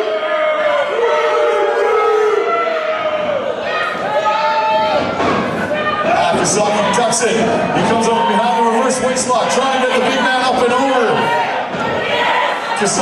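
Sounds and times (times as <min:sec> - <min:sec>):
people shouting long calls: 0:00.0 - 0:08.6
crowd noise: 0:00.0 - 0:13.0.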